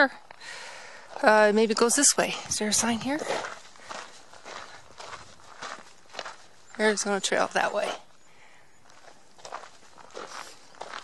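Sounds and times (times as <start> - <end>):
footsteps on a dirt trail: 0.3 - 11.0.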